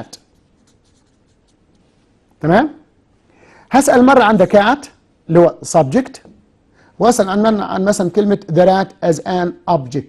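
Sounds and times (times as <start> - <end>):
marker pen writing on board: 0.2 - 1.8.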